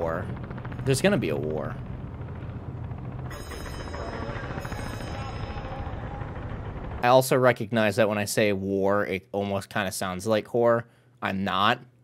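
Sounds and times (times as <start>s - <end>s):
low rumble: 0.0s - 7.1s.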